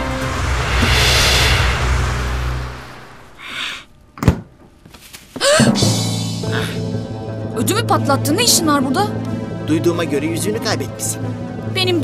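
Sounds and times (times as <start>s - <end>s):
low rumble: 0.0s - 3.8s, 5.8s - 8.2s
whoosh: 0.0s - 3.8s
background music: 5.5s - 12.0s.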